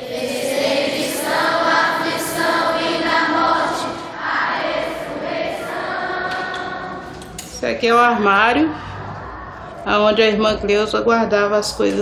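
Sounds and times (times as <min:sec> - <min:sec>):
children singing together: 0:00.0 - 0:07.5.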